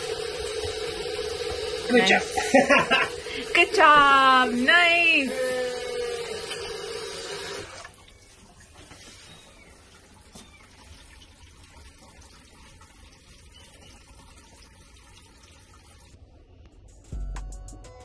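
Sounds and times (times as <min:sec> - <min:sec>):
faucet water running into sink: 0:00.0 - 0:16.2.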